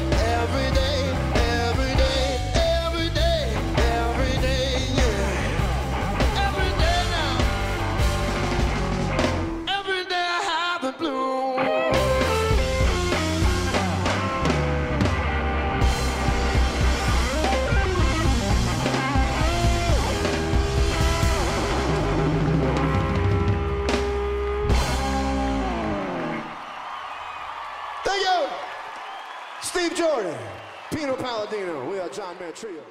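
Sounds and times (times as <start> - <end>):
blues-rock band playing: 0.0 - 9.8, 11.3 - 26.8.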